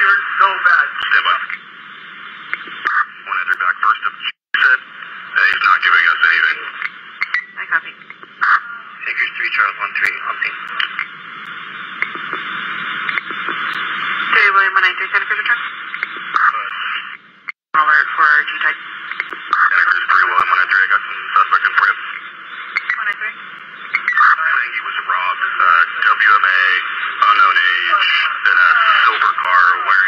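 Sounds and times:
garbled radio speech: 0:00.0 - 0:01.7, 0:02.4 - 0:30.0
radio channel hiss: 0:00.0 - 0:30.0.

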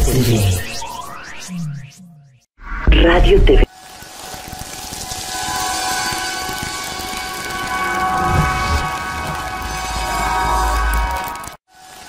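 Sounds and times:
low rumble: 0:08.1 - 0:11.3.

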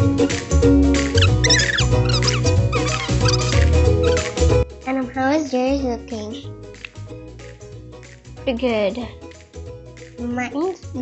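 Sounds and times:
upbeat music with pulsing bass: 0:00.0 - 0:04.7
high gliding chirps: 0:01.2 - 0:04.2.

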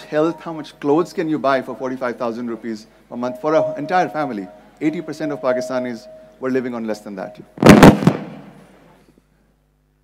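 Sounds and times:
faint electrical hum: 0:00.0 - 0:10.0
loud burst of noise: 0:07.6 - 0:09.0.

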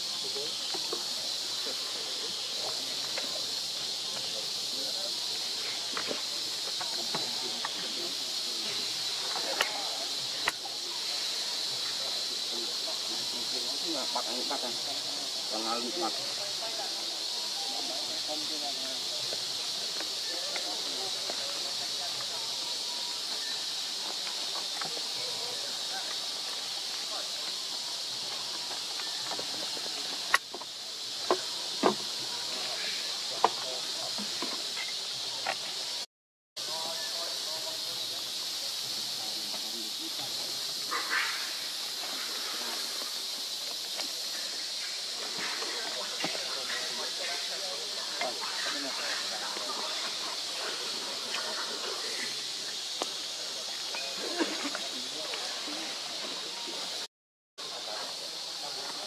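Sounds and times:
faint distant voices: 0:00.0 - 0:36.0, 0:36.6 - 0:59.0
insect chorus hissing: 0:00.0 - 0:59.0.

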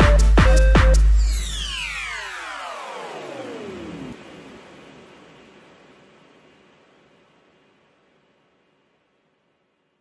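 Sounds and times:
falling synth pitch sweep: 0:00.0 - 0:05.8
faint hiss: 0:01.6 - 0:10.0.

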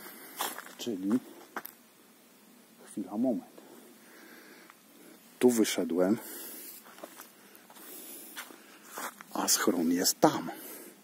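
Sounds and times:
footsteps on dirt path: 0:00.0 - 0:01.8, 0:06.2 - 0:09.5
light hiss: 0:00.0 - 0:11.0.

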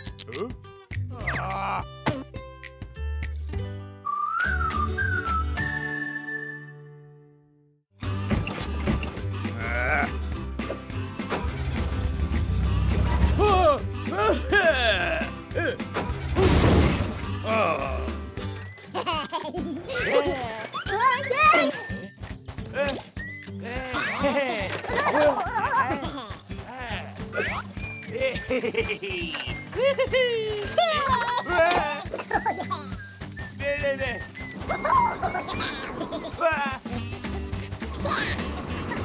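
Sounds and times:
cartoon background music: 0:00.0 - 0:39.0
gibberish character voices: 0:00.2 - 0:02.0, 0:09.6 - 0:10.2, 0:13.4 - 0:15.8, 0:19.5 - 0:22.1, 0:22.7 - 0:32.9, 0:33.6 - 0:37.0, 0:37.8 - 0:38.6.

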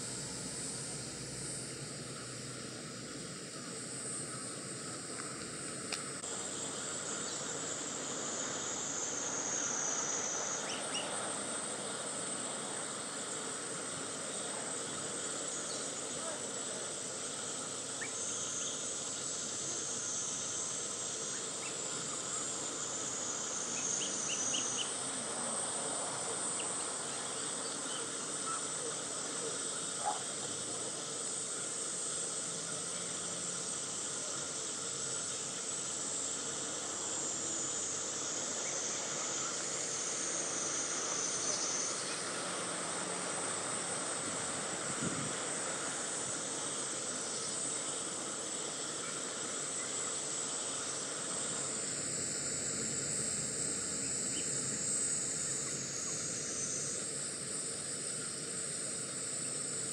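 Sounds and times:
high insect buzz: 0:00.0 - 0:59.9
outdoor background hiss: 0:00.0 - 0:59.9.

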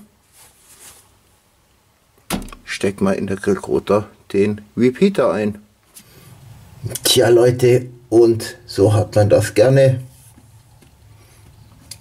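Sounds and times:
faint rustling: 0:00.0 - 0:01.4.

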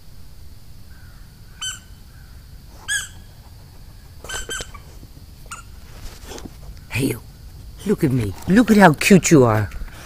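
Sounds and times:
high-pitched squeaky animal calls: 0:01.5 - 0:02.0, 0:02.8 - 0:03.4, 0:04.2 - 0:05.8.

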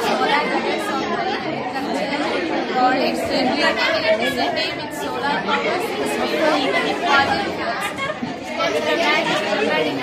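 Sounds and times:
many people talking at once: 0:00.0 - 0:10.0.

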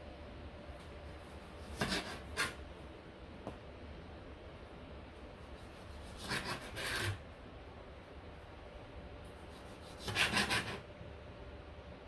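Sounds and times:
knife slicing on plastic board: 0:01.7 - 0:02.6.

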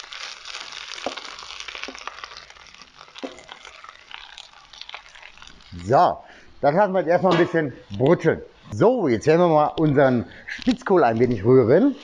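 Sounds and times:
vegetables sizzling in hot fat: 0:00.0 - 0:07.2, 0:08.9 - 0:12.0.

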